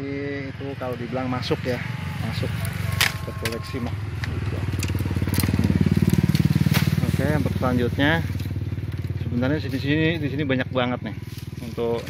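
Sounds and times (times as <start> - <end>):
pulsing low rumble: 0.0 - 12.0
dry bamboo crunching and crackling: 0.7 - 12.0
bamboo snapping: 2.6 - 7.4.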